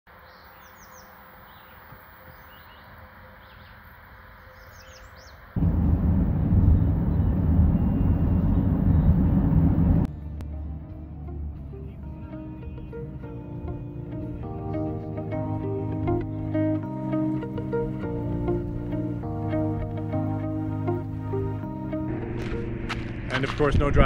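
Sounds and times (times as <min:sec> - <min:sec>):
faint outdoor ambience: 0:00.1 - 0:24.0
small birds chirping: 0:00.2 - 0:05.6, 0:06.5 - 0:09.5
road and wind rumble in vehicle: 0:05.6 - 0:12.1
plucked-string music: 0:10.1 - 0:23.1.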